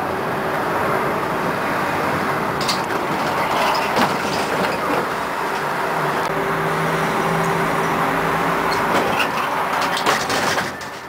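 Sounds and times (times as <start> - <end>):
tram rolling on rails: 0.0 - 11.0.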